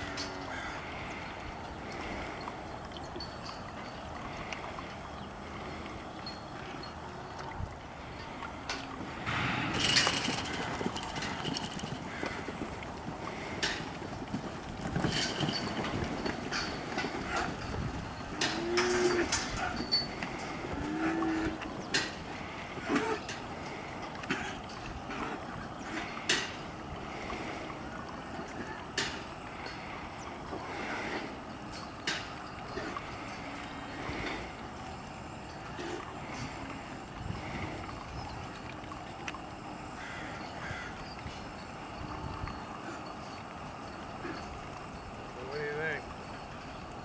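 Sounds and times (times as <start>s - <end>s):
faint bird calls: 0.0s - 8.9s, 21.0s - 47.0s
wind rumble on microphone: 6.2s - 22.0s, 36.2s - 38.8s, 41.2s - 42.8s
background rustle: 8.0s - 38.9s
cattle mooing: 16.6s - 23.4s.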